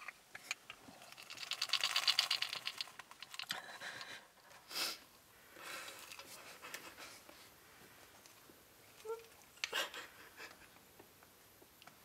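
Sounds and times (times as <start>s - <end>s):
rapid mechanical clicking: 1.0s - 3.6s.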